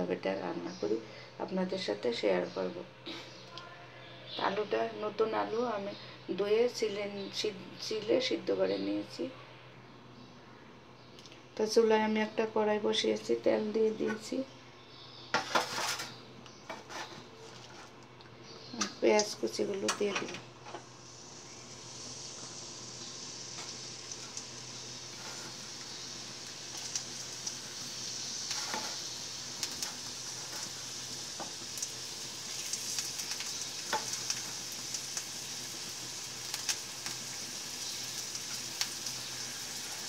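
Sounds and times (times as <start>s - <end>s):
onions sizzling in hot oil: 15.3s - 17.8s, 18.7s - 40.0s
metal utensils clinking and scraping: 15.4s - 18.0s
crackling pops: 22.4s - 40.0s.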